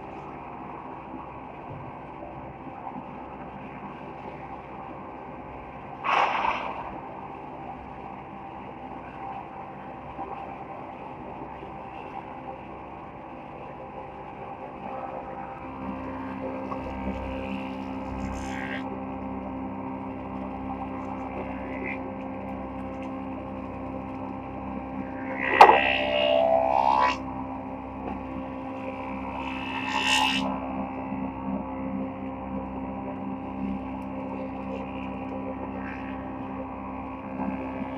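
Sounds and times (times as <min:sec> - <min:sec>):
lower hum: 0:00.0 - 0:37.9
planer cutting board with whine: 0:25.0 - 0:27.3.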